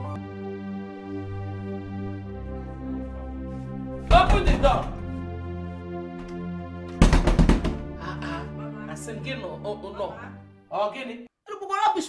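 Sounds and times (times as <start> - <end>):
background music: 0.0 - 11.4
knocking on a door: 4.1 - 5.0, 6.9 - 7.9.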